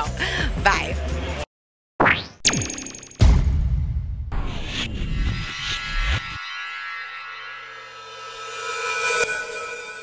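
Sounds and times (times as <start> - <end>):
sustained electronic tone: 4.4 - 10.0.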